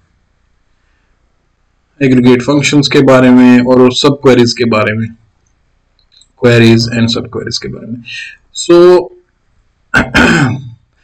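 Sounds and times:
man clearing his throat: 10.0s - 10.8s.

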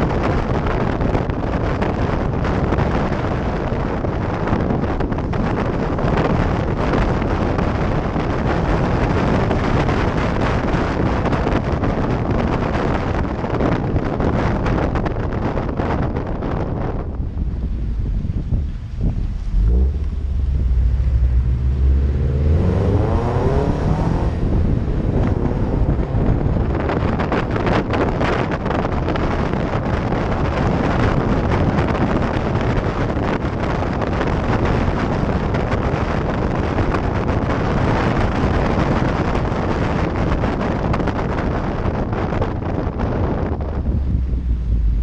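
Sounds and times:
wind buffeting microphone: 0.0s - 45.0s
car engine accelerating: 17.3s - 28.0s.

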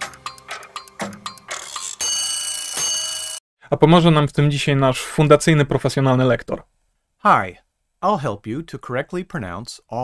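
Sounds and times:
clockwork ticking clicks: 0.0s - 3.4s.

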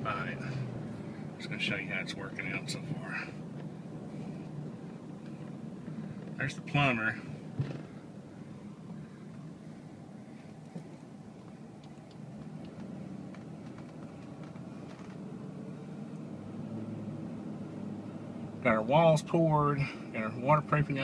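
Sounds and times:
vehicle running from inside cab: 0.0s - 21.0s.

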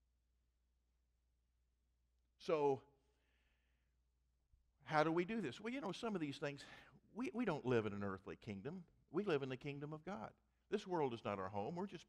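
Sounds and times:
man speaking: 2.4s - 2.8s, 4.9s - 12.0s
faint breath: 3.0s - 3.9s, 6.6s - 7.0s.

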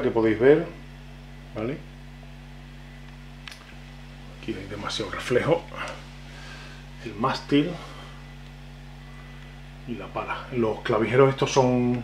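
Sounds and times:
guitar amplifier hum: 0.0s - 12.0s.

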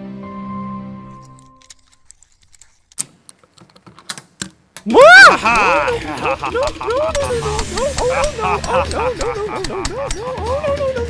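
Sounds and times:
loud voice: 4.9s - 10.2s.

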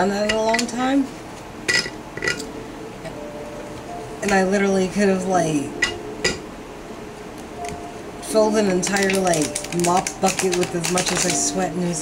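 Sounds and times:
cards rustling: 8.9s - 12.0s.

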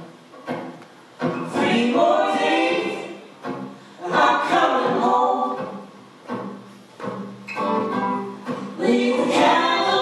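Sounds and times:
voices singing in harmony: 1.3s - 5.9s, 8.6s - 10.0s.

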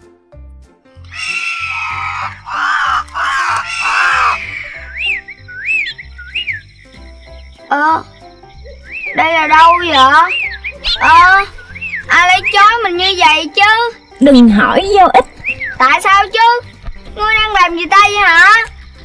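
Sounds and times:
soft background music: 0.0s - 19.0s
raspy cartoon cry: 1.1s - 5.0s
chirpy sliding tweets: 1.2s - 16.3s.

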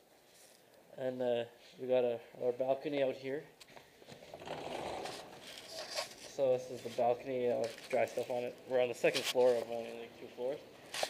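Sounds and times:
sliding door scraping along track: 4.3s - 6.2s.

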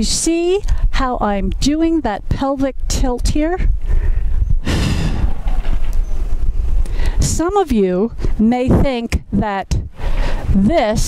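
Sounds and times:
wind buffeting microphone: 0.0s - 11.0s
rush of breathy noise: 3.7s - 7.3s, 9.9s - 10.6s.

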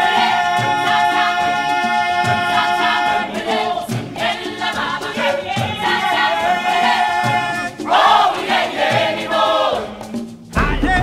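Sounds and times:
choir singing: 0.0s - 11.0s
musical accompaniment: 0.0s - 11.0s.

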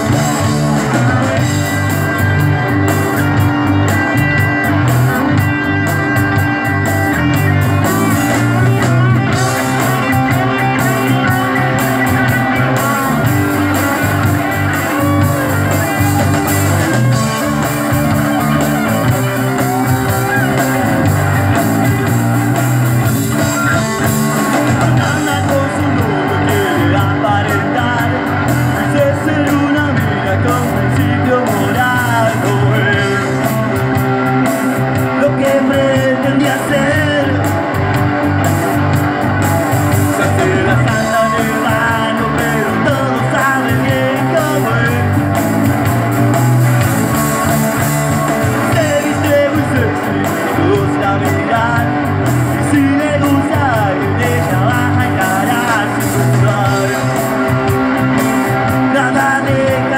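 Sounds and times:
bass guitar: 0.0s - 59.9s
drum kit: 0.0s - 59.9s
electric guitars: 0.0s - 59.9s.

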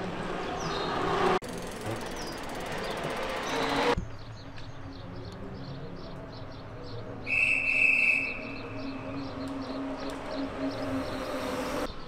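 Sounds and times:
bike tyres rolling on asphalt: 0.0s - 4.9s, 8.3s - 11.8s.

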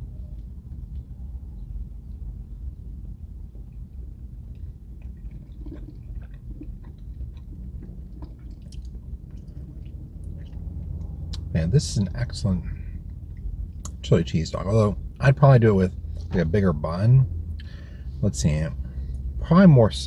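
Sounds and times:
man chewing food: 0.0s - 11.5s
low rumble in car cabin: 0.0s - 20.0s
wet mouth clicks: 4.5s - 11.5s.

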